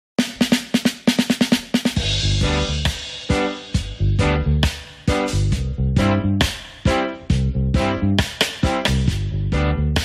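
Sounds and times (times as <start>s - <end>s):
fast drum fill: 0.2s - 5.6s.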